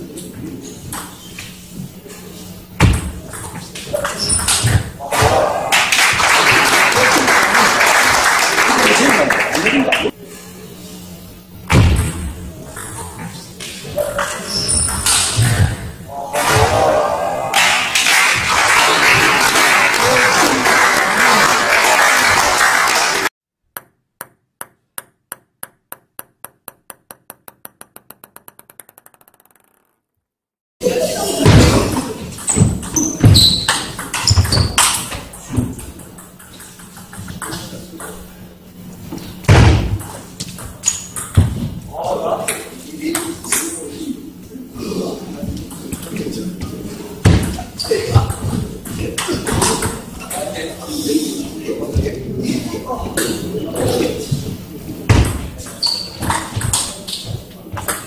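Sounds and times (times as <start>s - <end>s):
table tennis ball bouncing: 23.7s - 30.1s
ball-on-bat clicks: 23.8s - 30.0s.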